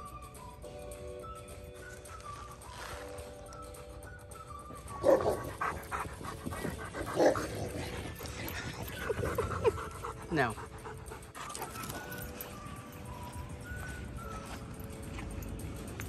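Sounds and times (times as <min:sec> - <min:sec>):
background music held notes: 0:00.0 - 0:16.0
dog barking: 0:05.0 - 0:05.8, 0:07.0 - 0:08.0.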